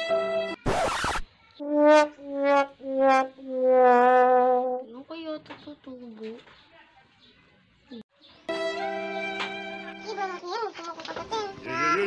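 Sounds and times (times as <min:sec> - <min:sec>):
short burst of noise: 0:00.6 - 0:01.4.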